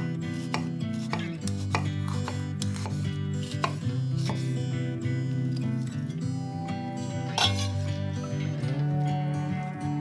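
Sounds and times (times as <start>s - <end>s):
background music: 0.0s - 10.0s
knife chopping on wooden board: 0.3s - 4.5s.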